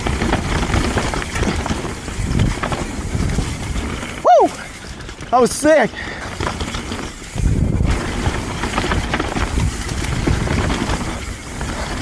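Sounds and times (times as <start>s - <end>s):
wind noise on microphone: 0.0s - 5.3s, 6.2s - 12.0s
bike clicks and rattles: 0.0s - 12.0s
bike tyres on dirt: 0.0s - 12.0s.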